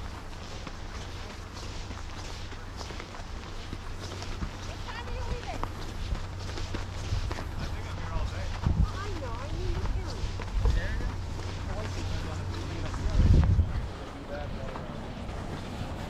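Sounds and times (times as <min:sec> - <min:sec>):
footsteps on packed snow: 0:00.0 - 0:16.0
steady low hum: 0:00.0 - 0:16.0
people talking nearby: 0:04.0 - 0:15.3.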